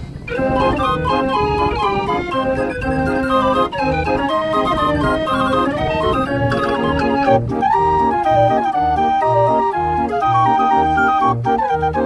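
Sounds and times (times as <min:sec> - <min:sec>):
street organ playing a march: 0:00.1 - 0:12.0.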